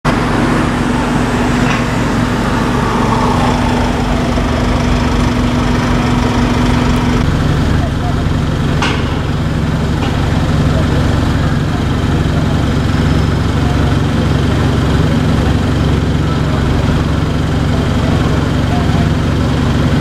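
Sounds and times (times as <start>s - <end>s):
indistinct voices: 0.0s - 7.2s
steady hum: 0.0s - 7.3s
vehicle engines idling: 0.0s - 19.7s
street noise: 0.0s - 20.0s.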